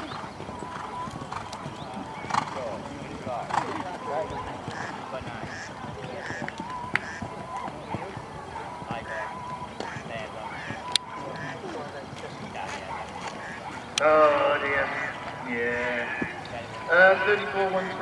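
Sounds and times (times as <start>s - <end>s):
horse hoofbeats on sand: 0.0s - 18.0s
indistinct voices: 0.0s - 18.0s.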